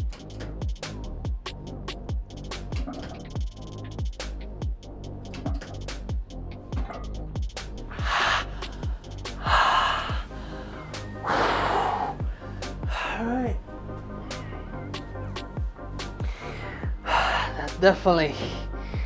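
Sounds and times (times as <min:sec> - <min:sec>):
electronic music with steady beat: 0:00.0 - 0:19.0.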